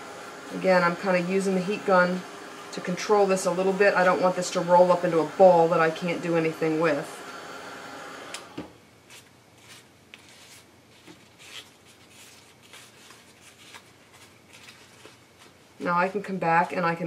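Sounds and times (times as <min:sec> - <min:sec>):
heat gun blowing: 0:00.0 - 0:08.6
material crinkling and rubbing: 0:09.1 - 0:16.8.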